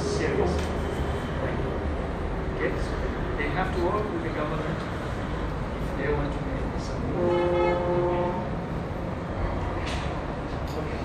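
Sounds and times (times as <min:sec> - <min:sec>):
horn-like chord: 0:07.2 - 0:08.5.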